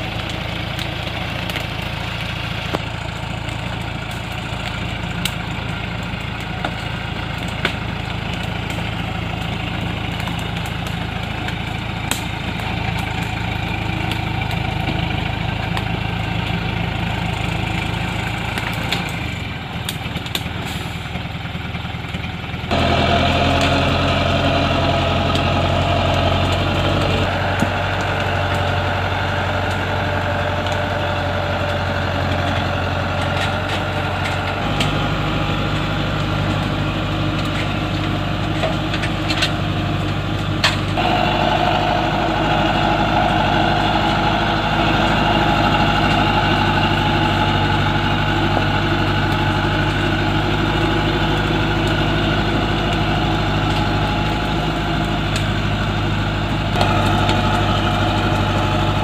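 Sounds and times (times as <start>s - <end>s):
truck diesel engine running: 0.0s - 59.0s.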